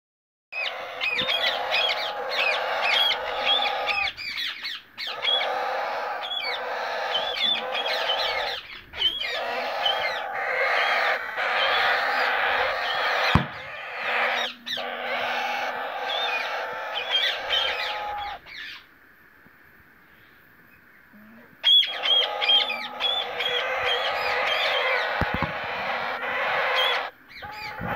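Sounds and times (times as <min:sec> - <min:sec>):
parrot chicks hissing chorus: 0:00.6 - 0:18.9, 0:21.7 - 0:27.9.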